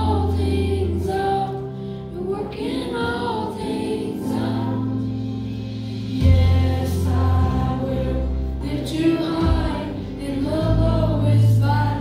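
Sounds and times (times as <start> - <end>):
held bass notes: 3.1 - 12.0.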